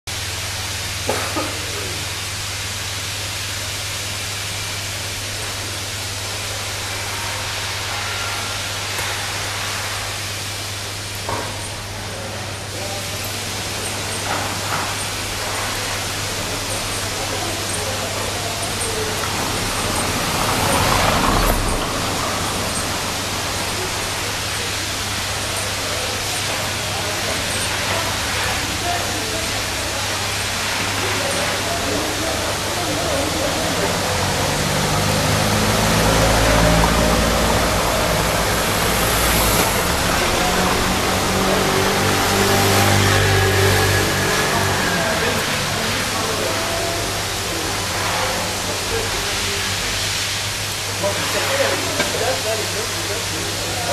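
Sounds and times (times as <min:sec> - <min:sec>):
street hum: 0:00.1 - 0:53.9
car passing on cobblestones: 0:13.2 - 0:28.7, 0:29.4 - 0:50.1
van engine running: 0:31.5 - 0:51.0.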